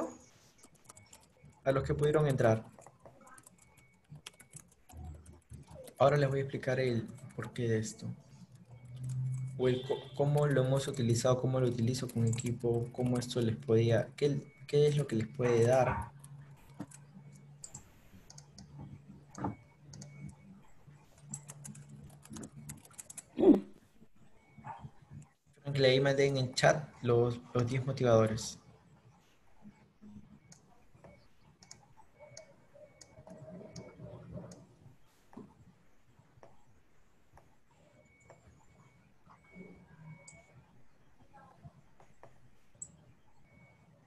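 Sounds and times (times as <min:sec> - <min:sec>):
computer keyboard typing: 0:00.0 - 0:23.4, 0:30.4 - 0:34.7, 0:37.9 - 0:40.6.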